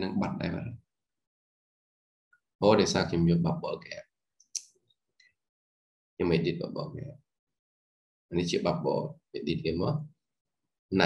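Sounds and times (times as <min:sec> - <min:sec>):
person talking: 0:00.0 - 0:00.8.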